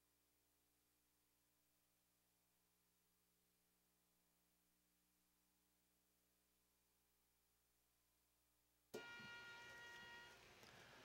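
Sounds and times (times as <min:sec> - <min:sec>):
faint hiss: 0:10.0 - 0:11.0.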